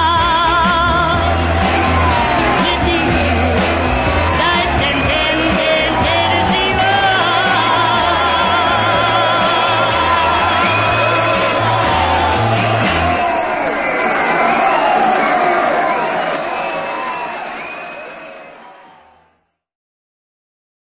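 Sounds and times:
pop record held chord: 0.0 - 13.2
voices and whoops: 0.8 - 19.2.

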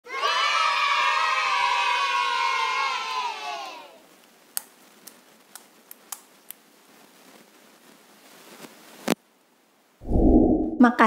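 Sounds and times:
children cheering and shouting: 0.1 - 4.0.

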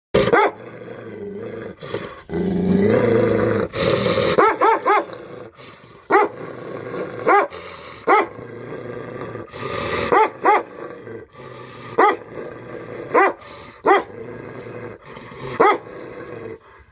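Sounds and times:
small dog growling: 0.2 - 4.4
small dog barking: 0.3 - 0.6, 4.4 - 5.1, 6.1 - 6.3, 7.3 - 7.5, 8.1 - 8.3, 10.1 - 10.7, 12.0 - 12.2, 15.6 - 15.8.

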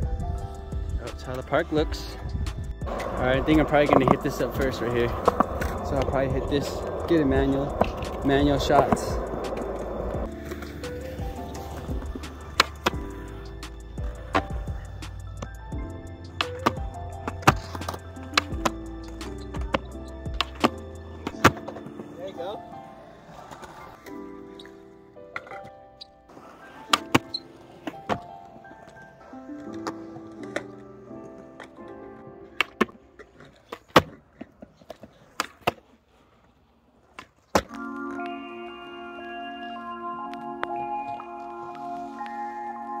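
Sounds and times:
background music: 0.0 - 33.7, 37.6 - 43.0
skateboard clacking on concrete: 2.8 - 15.6, 16.3 - 24.8, 26.3 - 38.3.

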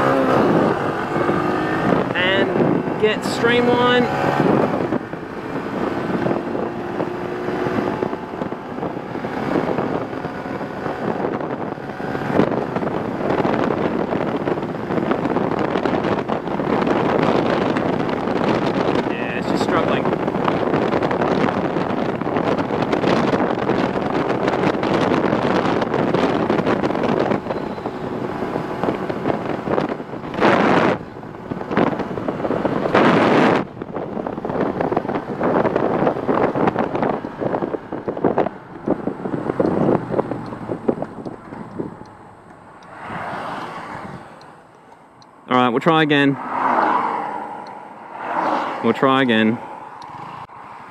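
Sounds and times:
motorcycle engine drone: 0.0 - 43.0
wind rushing over microphone: 0.0 - 50.9.

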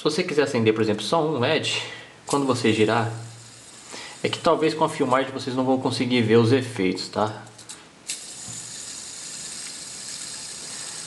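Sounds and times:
fidget spinner whirring: 2.3 - 4.8, 7.4 - 11.0.

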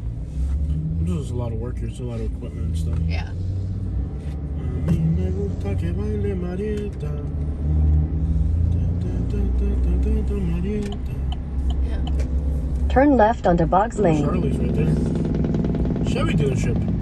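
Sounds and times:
car cabin rumble: 4.6 - 17.0
quiet voice: 14.0 - 14.9.

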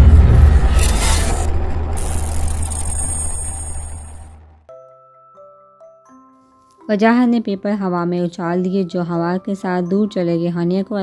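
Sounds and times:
deep cinematic rumble: 0.0 - 4.7
thin high ringing tones: 0.6 - 4.6.

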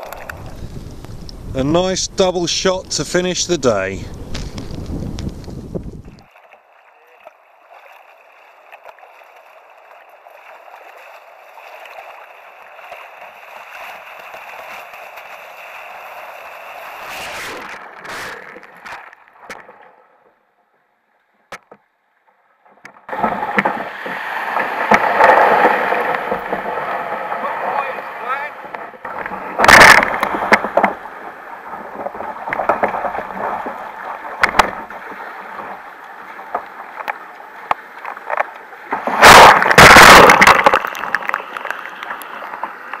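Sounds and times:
breaking waves splashing: 0.0 - 20.0, 23.0 - 43.0
water sloshing around kayak: 3.7 - 20.2, 22.8 - 43.0.

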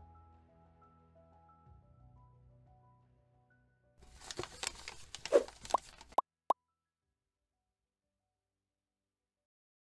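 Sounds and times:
quick swishing strokes: 5.3 - 5.7.

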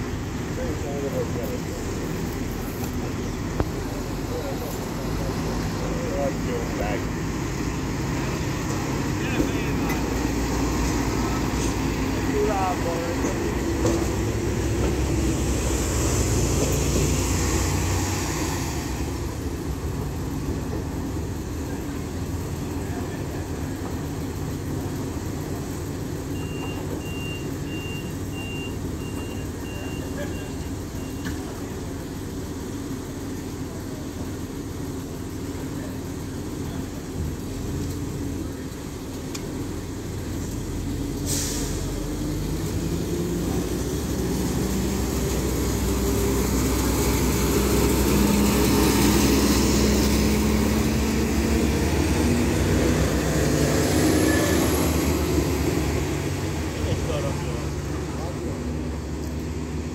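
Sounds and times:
diesel train engine: 0.0 - 59.9
door-warning beeps: 26.3 - 31.4
hiss of air: 41.1 - 42.3.

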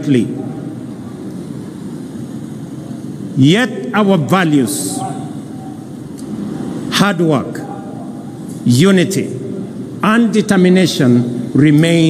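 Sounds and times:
echo of amplified speech: 0.0 - 12.0
outdoor venue background noise: 0.0 - 12.0.

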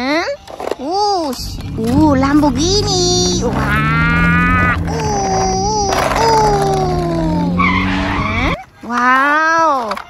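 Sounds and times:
vehicle engine with falling pitch: 1.5 - 8.6
tyre screech: 2.7 - 9.0.

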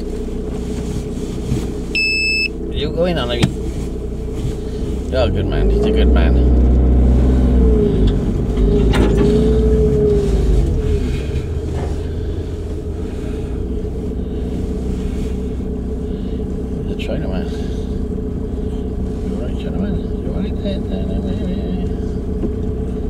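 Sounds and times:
van engine and tyre drone: 0.0 - 23.0.

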